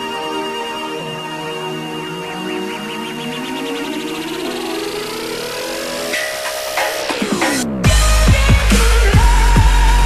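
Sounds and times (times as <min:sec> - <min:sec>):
rising synth tone: 0:00.0 - 0:08.1.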